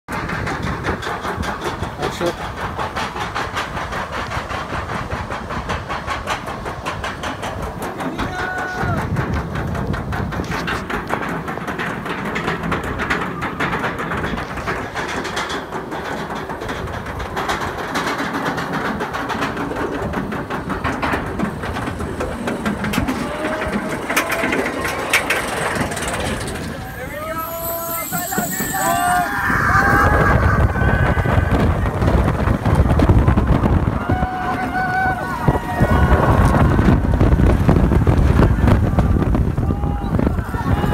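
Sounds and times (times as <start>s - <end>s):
roller coaster lift chain rumble: 0.1s - 40.9s
riders yelling: 8.0s - 9.0s, 26.9s - 31.9s, 33.9s - 36.9s, 38.5s - 40.9s
rattling clicks: 9.2s - 27.0s.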